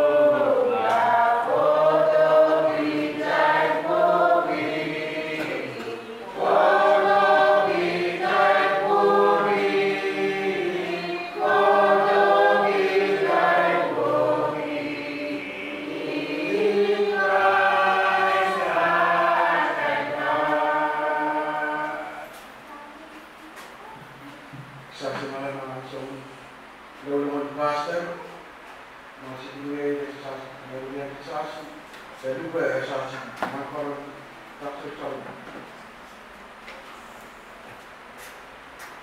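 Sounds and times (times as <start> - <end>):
congregation singing a hymn: 0.0 - 22.6.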